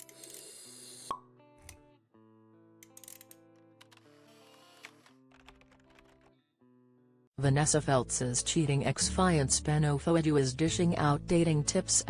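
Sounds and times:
background music: 1.1s - 12.0s.

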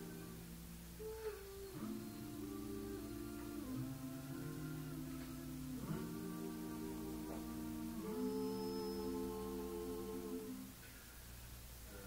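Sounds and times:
vocal group humming in harmony: 0.0s - 10.8s.

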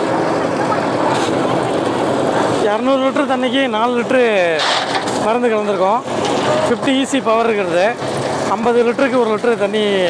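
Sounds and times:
noisy background: 0.0s - 10.0s.

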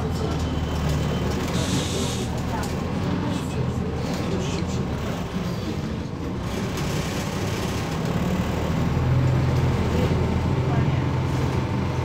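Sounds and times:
bus engine droning: 0.0s - 12.0s
road noise: 0.0s - 12.0s.

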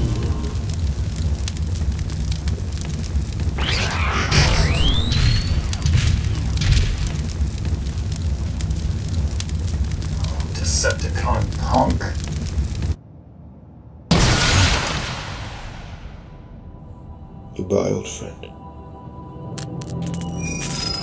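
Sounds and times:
burst of noise: 0.0s - 13.0s
deep rumble of booms: 0.0s - 13.0s.

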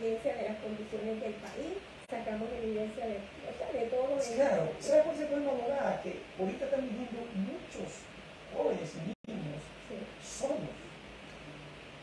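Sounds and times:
woman speaking: 0.0s - 4.8s.

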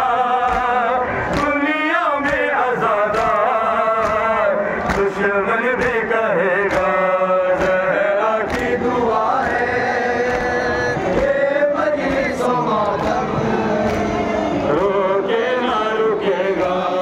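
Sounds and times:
men chanting a lament: 0.0s - 17.0s.

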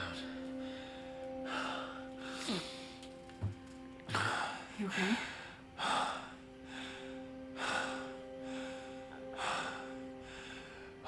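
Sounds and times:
soft held music chord: 0.0s - 11.0s
man breathing heavily: 0.1s - 11.0s.

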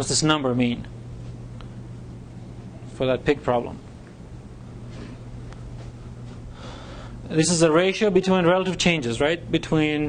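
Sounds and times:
low electrical hum: 0.0s - 10.0s
person drawing a soft breath: 6.5s - 7.2s.

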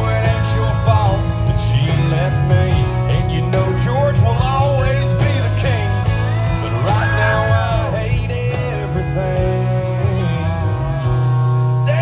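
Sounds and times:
live country band: 0.0s - 12.0s.

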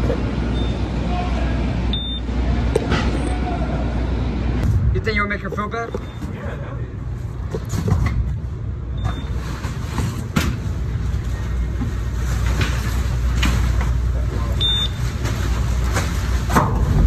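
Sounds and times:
conveyor machinery rumbling: 0.0s - 17.0s
scanner beep: 0.5s - 0.9s, 1.9s - 2.3s, 5.9s - 6.4s, 14.6s - 15.0s.

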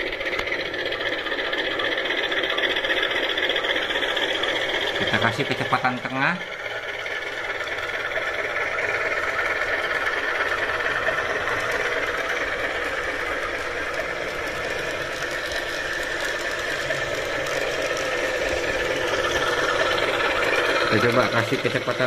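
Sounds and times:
model train motor and wheels: 0.0s - 22.0s
simulated diesel engine: 0.0s - 22.0s.

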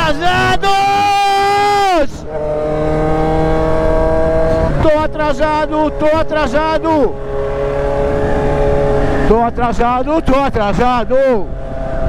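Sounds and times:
motorcycle engine humming steadily: 0.0s - 12.0s.

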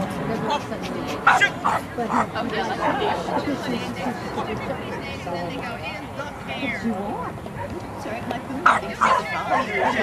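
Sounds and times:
background chatter: 0.0s - 10.0s
dog barking: 1.3s - 2.3s, 8.7s - 10.0s.

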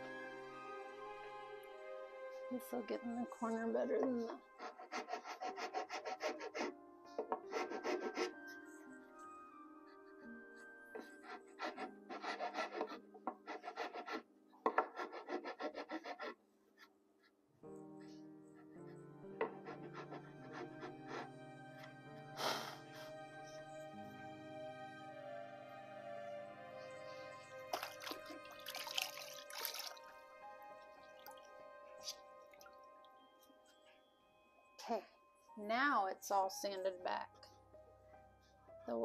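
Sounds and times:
background music: 0.0s - 17.0s, 17.6s - 39.0s
sandpaper on wood: 4.6s - 6.7s, 7.4s - 8.3s, 11.6s - 14.2s, 14.8s - 16.3s.

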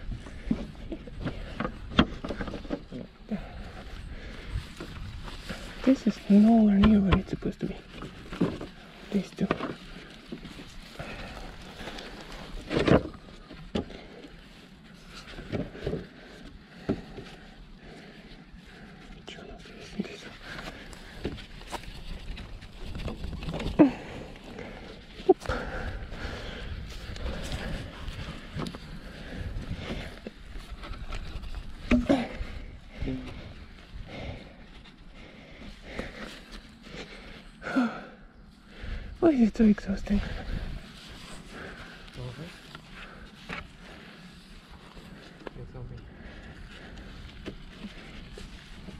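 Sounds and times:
plywood parts knocking and scraping: 0.1s - 3.2s, 6.7s - 8.8s, 9.4s - 10.6s, 12.0s - 14.0s, 30.2s - 32.4s.

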